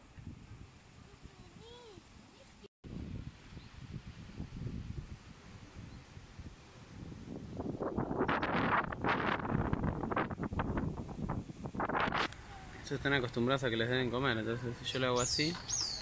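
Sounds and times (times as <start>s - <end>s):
wind buffeting microphone: 0.0s - 2.2s, 2.8s - 16.0s.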